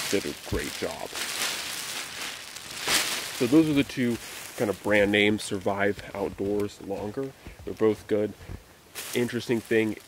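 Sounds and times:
mylar blanket crinkling: 0.0s - 10.0s.

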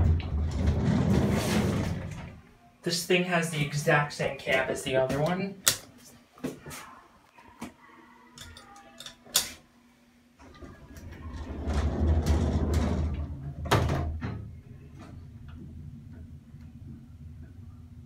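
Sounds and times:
low steady hum: 0.0s - 18.0s
elevator door rumbling shut: 11.1s - 14.2s.

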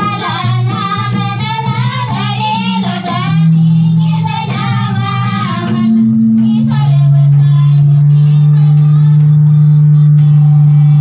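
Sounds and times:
long low held note: 3.2s - 11.0s.

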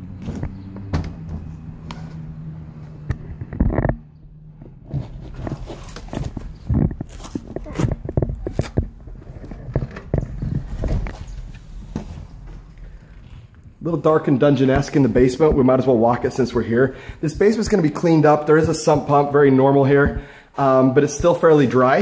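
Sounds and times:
knocks and scuffs: 0.0s - 12.8s
footsteps: 4.6s - 20.3s.

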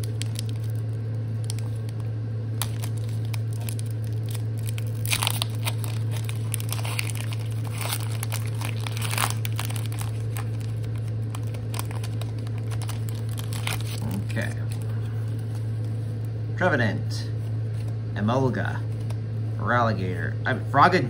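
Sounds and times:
foil wrapper tearing and crinkling: 0.0s - 16.3s
low hum: 0.0s - 21.0s.

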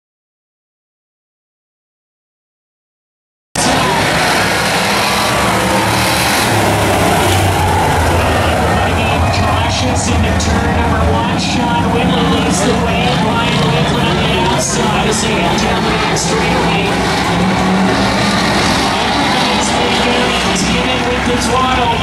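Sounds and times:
stock car engines humming: 3.6s - 22.0s.

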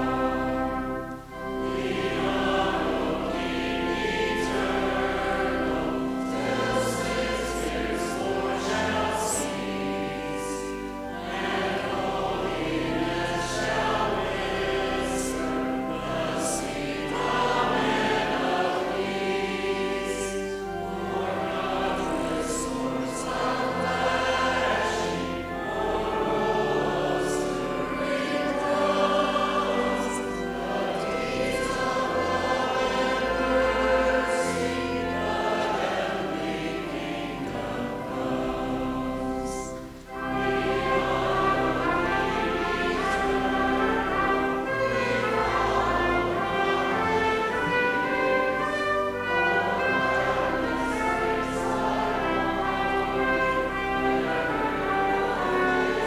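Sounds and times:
congregation and choir singing hymn: 0.0s - 56.0s
pipe organ bass notes: 0.0s - 56.0s.

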